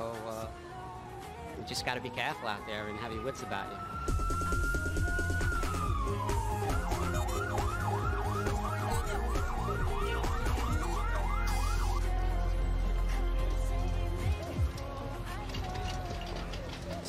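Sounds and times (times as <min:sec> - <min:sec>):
fire truck siren wail and yelp: 0:00.1 - 0:12.4.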